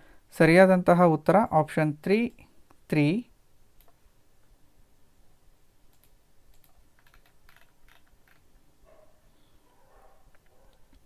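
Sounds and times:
faint clicks and taps: 0:03.8 - 0:04.0, 0:10.3 - 0:11.0.

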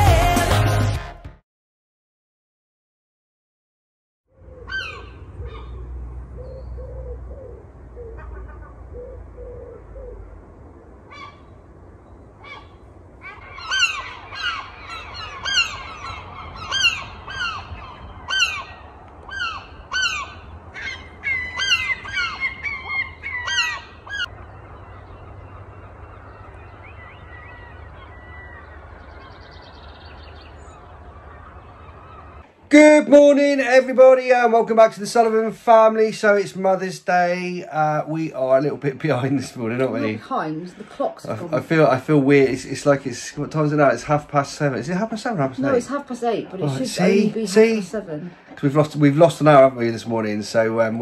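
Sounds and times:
lower bird calls: 0:04.3 - 0:32.7
birds honking: 0:04.4 - 0:33.2, 0:38.3 - 0:51.0.

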